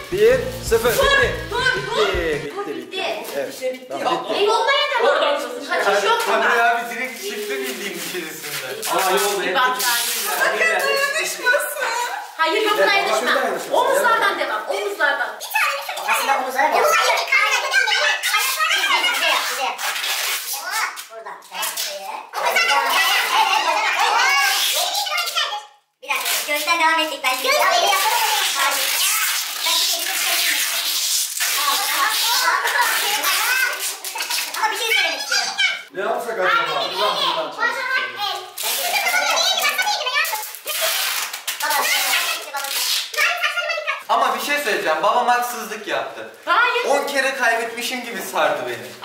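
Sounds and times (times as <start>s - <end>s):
duct tape pulled off roll: 0.0s - 2.4s, 7.2s - 11.0s, 19.4s - 22.0s, 26.1s - 26.7s, 27.3s - 34.8s, 38.6s - 39.3s, 40.2s - 43.2s
people talking: 0.0s - 2.8s
people talking at once: 0.0s - 8.0s.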